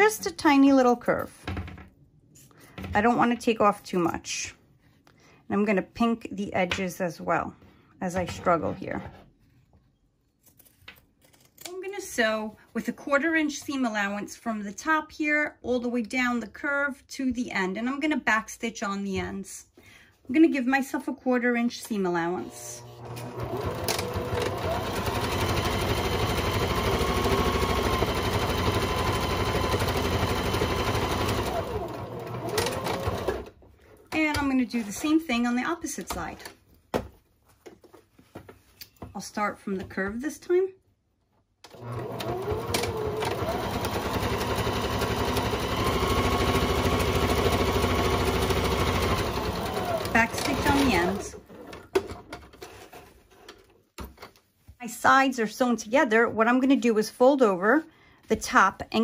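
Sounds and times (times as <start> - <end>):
sewing machine stitching: 22.4 - 33.5, 41.7 - 52.0.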